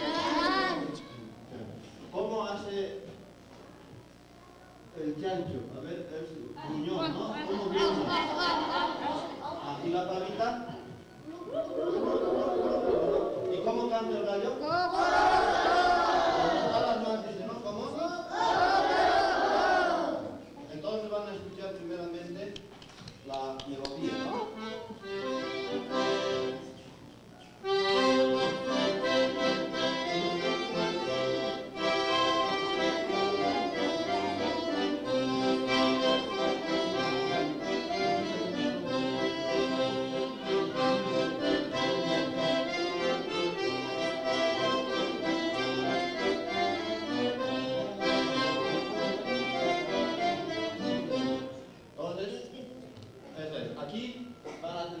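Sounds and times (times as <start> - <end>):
accordion melody: 0.0 - 1.0, 24.0 - 26.9, 27.6 - 51.7.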